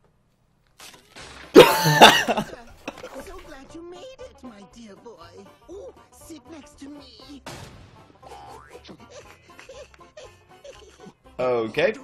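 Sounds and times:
man laughing and coughing: 1.6 - 3.2.

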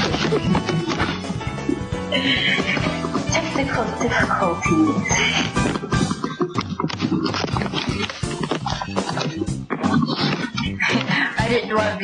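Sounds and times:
girls laughing: 0.0 - 3.5, 8.6 - 11.4
background music: 0.0 - 12.0.

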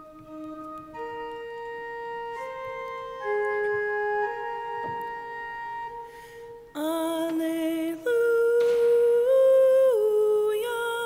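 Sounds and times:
solo voice singing long notes: 6.7 - 11.0.

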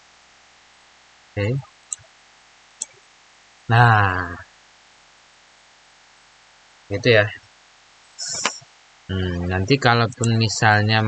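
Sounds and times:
faint room hiss: 0.0 - 11.0
man speaking: 1.4 - 1.6, 3.7 - 4.4, 6.9 - 7.4, 8.2 - 11.0.

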